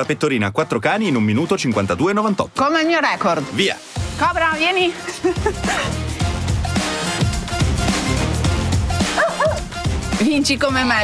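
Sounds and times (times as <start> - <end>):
background music with steady beat: 0.0 - 11.0
small dog yipping: 9.2 - 9.6.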